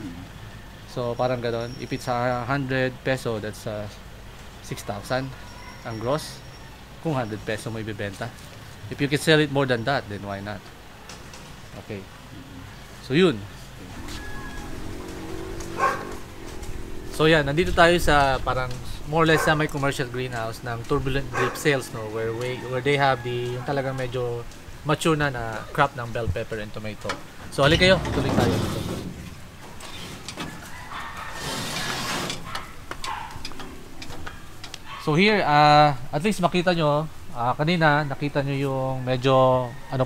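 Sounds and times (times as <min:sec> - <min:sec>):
steady low hum: 0:11.8 - 0:22.6
metal door sliding scrape: 0:27.6 - 0:30.6, 0:31.2 - 0:32.8
footsteps and handling clicks: 0:32.5 - 0:34.9.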